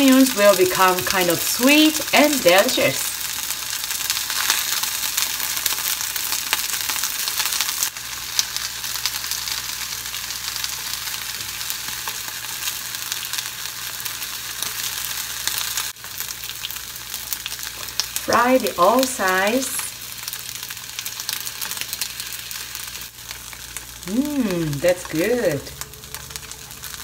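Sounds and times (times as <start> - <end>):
onion sizzling in oil: 0.0 - 27.0.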